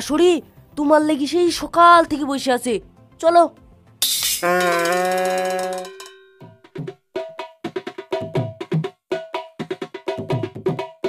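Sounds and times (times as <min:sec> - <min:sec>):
light percussion music: 0:03.3 - 0:11.0
held sound-effect note: 0:04.0 - 0:06.1.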